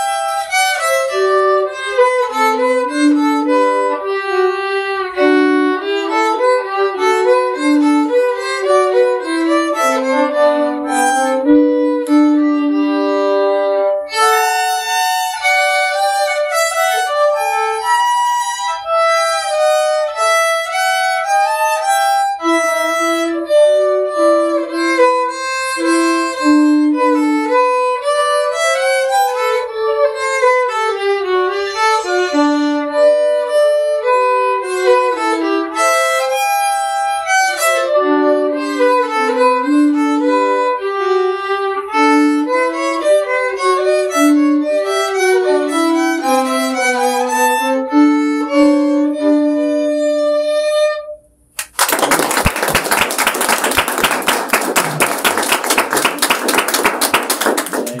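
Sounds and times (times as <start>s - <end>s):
violin duet: 0.0s - 51.2s
audience applause: 51.6s - 58.0s.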